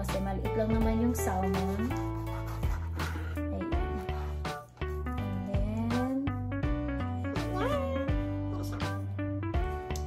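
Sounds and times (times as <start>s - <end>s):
upbeat instrumental music: 0.0s - 10.0s.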